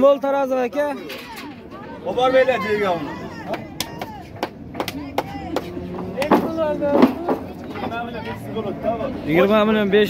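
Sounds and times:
low crowd voices: 0:00.0 - 0:10.0
sharp knocks: 0:04.0 - 0:07.5.

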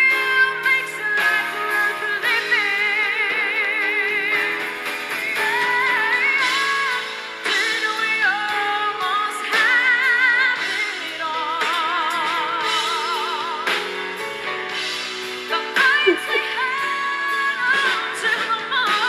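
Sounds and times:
woman singing: 0:00.0 - 0:13.9, 0:15.5 - 0:19.0
live band playing: 0:00.0 - 0:19.0.

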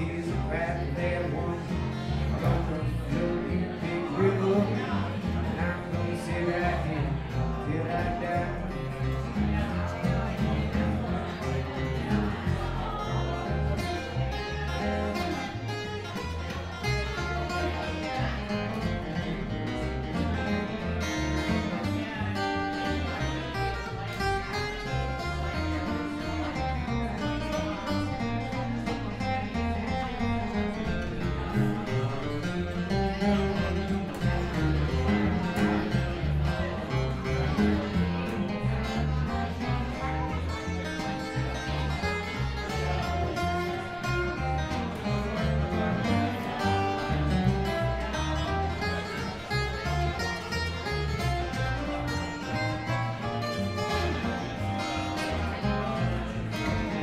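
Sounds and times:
acoustic guitar: 0:00.0 - 0:57.0
steady bass line: 0:00.0 - 0:57.0.

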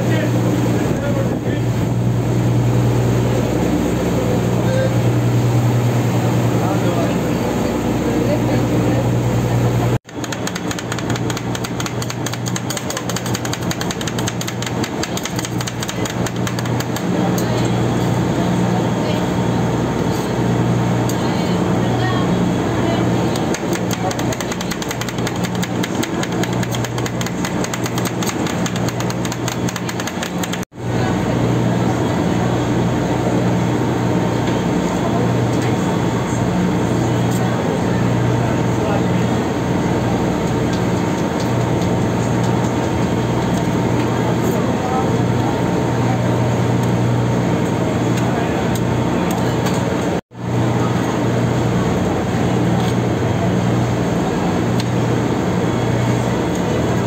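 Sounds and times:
boat engine humming: 0:00.0 - 0:57.0.

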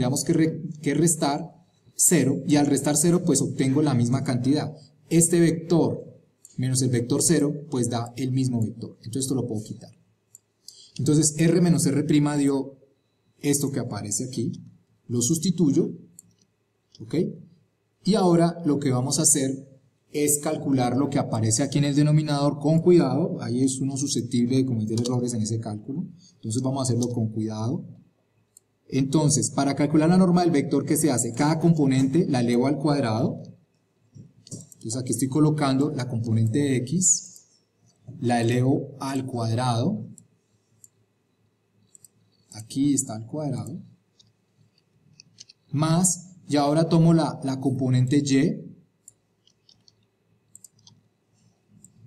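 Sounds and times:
faint computer mouse clicks: 0:41.8 - 0:42.5, 0:44.1 - 0:45.6, 0:49.0 - 0:51.0, 0:51.7 - 0:52.0.

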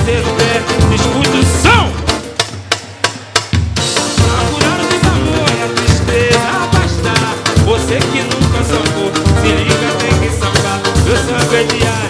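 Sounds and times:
samba percussion band: 0:00.0 - 0:12.0.

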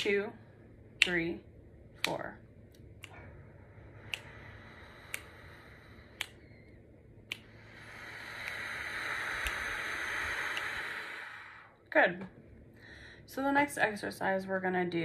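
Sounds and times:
light beat clicks: 0:00.9 - 0:01.4, 0:02.0 - 0:03.3
person breathing in and out: 0:03.0 - 0:11.8, 0:12.7 - 0:13.3.

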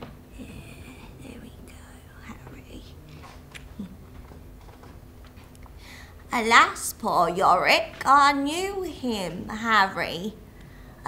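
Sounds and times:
woman whispering: 0:00.4 - 0:04.0.

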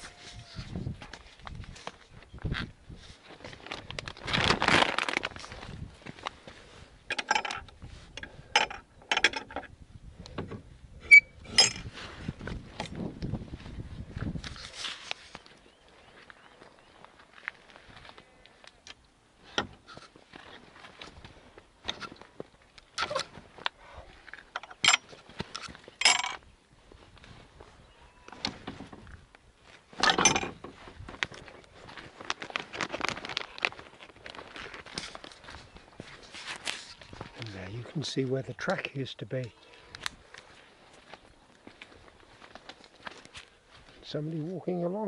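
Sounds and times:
footsteps on stony track: 0:00.0 - 0:06.9, 0:19.9 - 0:38.4, 0:39.5 - 0:44.5
rustles: 0:00.0 - 0:45.0.

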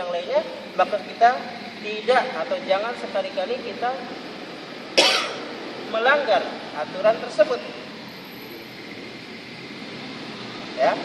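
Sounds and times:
person coughing: 0:05.0 - 0:05.4.

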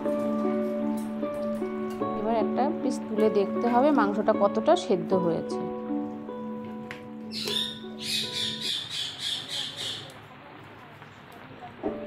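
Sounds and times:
background music with held notes: 0:00.0 - 0:09.4
harsh squawk-like calls: 0:07.3 - 0:10.2.

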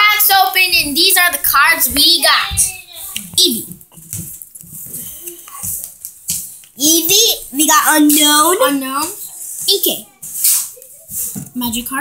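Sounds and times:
child speaking: 0:00.0 - 0:03.8, 0:06.8 - 0:12.0
trading cards rustling: 0:02.6 - 0:06.8.

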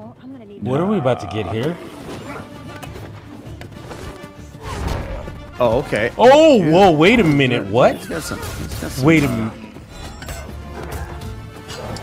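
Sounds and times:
background score music: 0:00.0 - 0:12.0.

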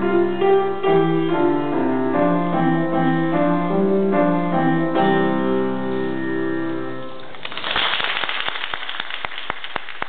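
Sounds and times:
audience applauding: 0:07.2 - 0:10.0
nearby person clapping: 0:07.3 - 0:10.0.

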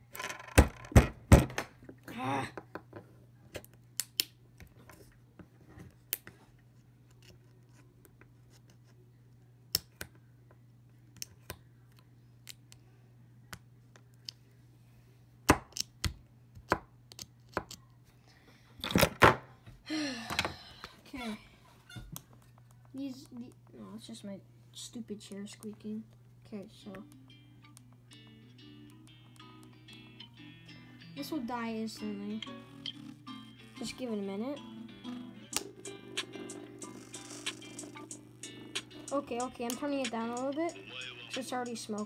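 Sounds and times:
chair squeaking: 0:00.0 - 0:01.5, 0:21.8 - 0:22.2, 0:32.4 - 0:34.1, 0:35.1 - 0:39.5
steady low hum: 0:19.5 - 0:42.0.

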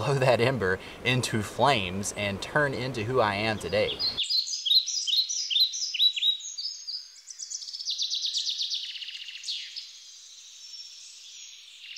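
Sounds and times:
songbirds chirping and trilling: 0:00.0 - 0:11.9.

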